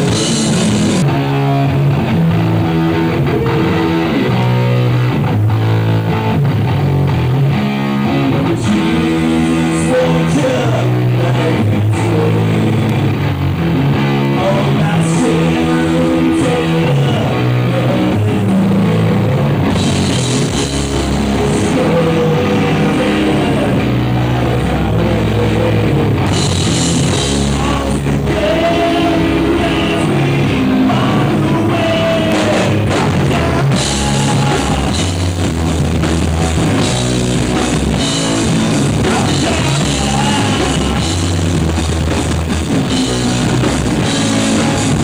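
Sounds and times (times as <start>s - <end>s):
drum kit: 0.0s - 45.0s
heavy electric guitar riff: 0.0s - 45.0s.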